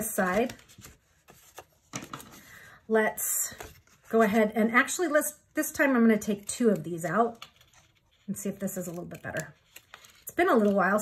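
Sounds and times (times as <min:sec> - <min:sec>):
cardstock rustling and folding: 0:00.0 - 0:02.6, 0:03.5 - 0:04.4, 0:06.1 - 0:11.0.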